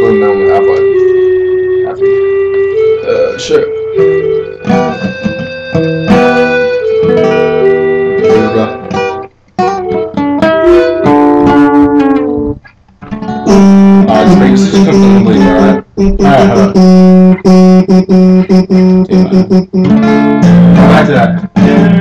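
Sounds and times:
acoustic guitar playing: 0.0 - 22.0.

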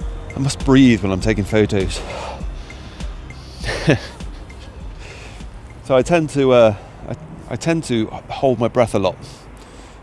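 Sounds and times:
faint background music: 0.0 - 9.2
man breathing out: 2.0 - 3.9, 4.6 - 5.5
man laughing: 3.4 - 5.0.

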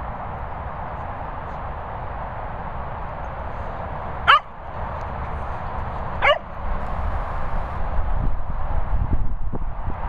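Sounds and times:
dog yelping: 4.3 - 4.5, 6.2 - 6.5.

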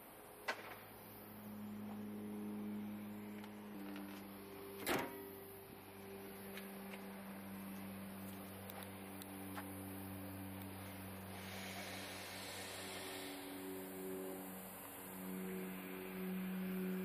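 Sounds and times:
steady low hum: 0.0 - 17.0
car hood slamming shut: 4.8 - 5.2.

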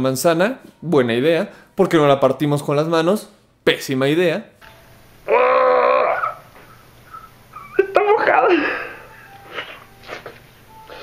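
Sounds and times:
man groaning with effort: 5.3 - 6.4.

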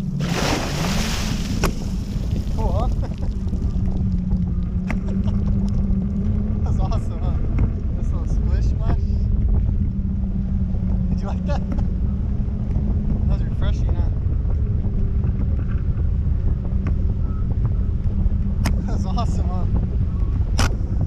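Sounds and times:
faint constant hum: 0.0 - 21.0
wind buffeting microphone: 0.0 - 21.0.

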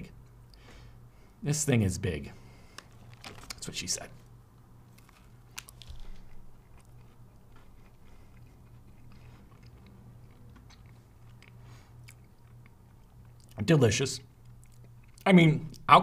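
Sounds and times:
steady low hum: 0.0 - 16.0
faint chewing: 4.9 - 13.6, 14.3 - 15.9.

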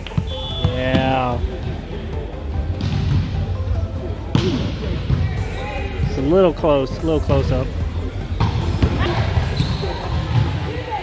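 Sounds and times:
chatter of players and spectators: 0.0 - 11.0.

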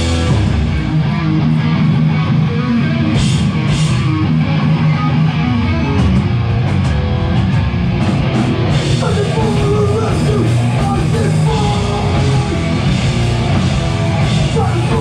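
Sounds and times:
punk band playing live: 0.0 - 15.0.

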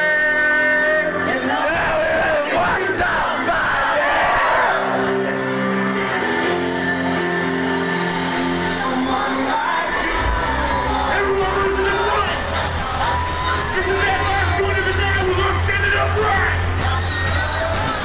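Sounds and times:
hip-hop music through loudspeakers: 0.0 - 18.0
crowd shouting: 1.3 - 5.5, 9.4 - 18.0
deep bass: 5.0 - 18.0.

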